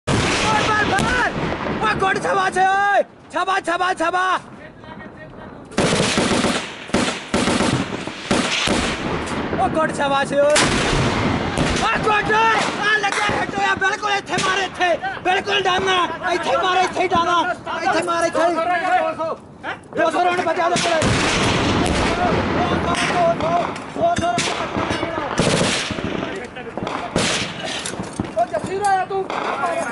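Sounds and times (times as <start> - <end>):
automatic gunfire bursts: 5.8 - 9.0.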